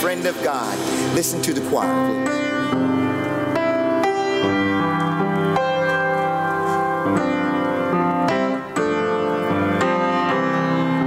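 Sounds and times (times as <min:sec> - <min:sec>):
piano playing sustained chords: 0:00.0 - 0:11.0.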